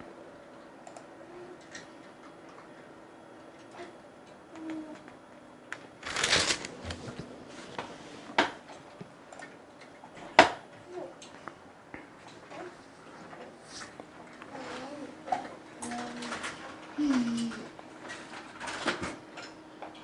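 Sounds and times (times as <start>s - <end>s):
pages snapping: 6.0s - 7.2s
paper pages rustling: 6.0s - 8.0s.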